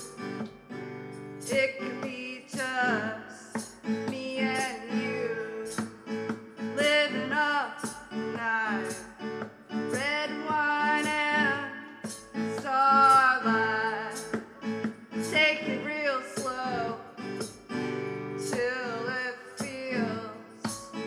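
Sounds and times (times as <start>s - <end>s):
guitar: 0.0s - 21.0s
keyboard: 0.0s - 21.0s
woman singing pop song: 1.2s - 21.0s.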